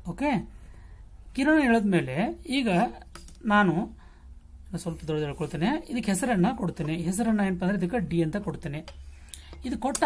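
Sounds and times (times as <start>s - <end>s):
person talking: 1.4s - 4.0s, 4.7s - 10.0s.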